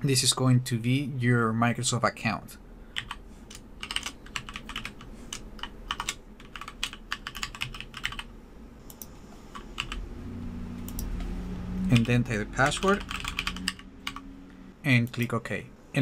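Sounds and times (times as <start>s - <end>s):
typing on computer keyboard: 3.0s - 8.3s, 8.9s - 10.0s, 11.9s - 14.2s.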